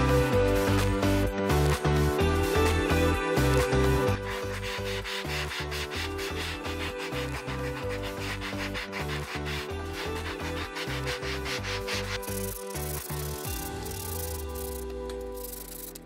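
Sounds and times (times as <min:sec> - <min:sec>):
background music with steady beat: 0:00.0 - 0:16.0
sandpaper rubbing on wood: 0:03.8 - 0:14.8.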